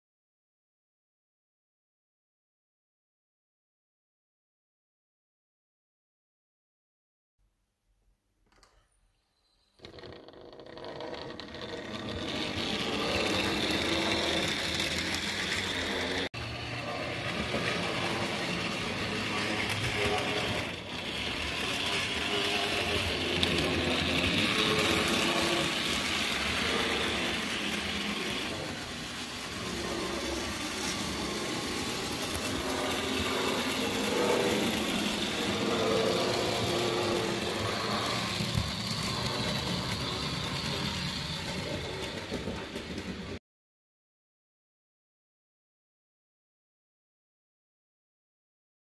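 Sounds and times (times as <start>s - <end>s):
wheels rattling over track: 9.8s - 43.4s
electric motors whirring: 10.8s - 43.0s.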